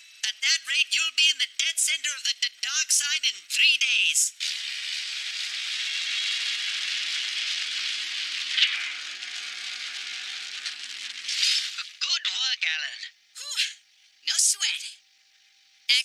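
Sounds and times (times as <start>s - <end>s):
person speaking: 0.2s - 4.4s, 11.8s - 15.0s
steady hiss-like machine noise: 4.3s - 12.0s.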